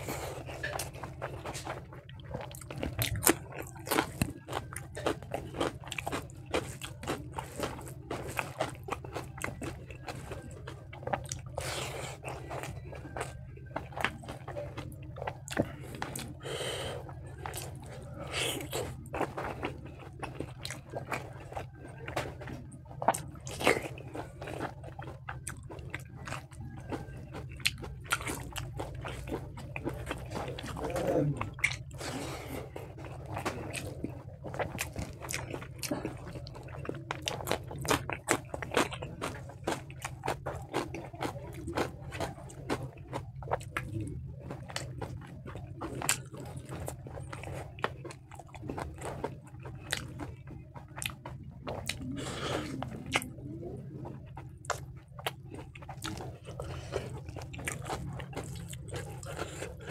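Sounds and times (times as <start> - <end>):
chewing and wet mouth smacks: 0.0 - 59.9
steady low hum: 0.0 - 59.9.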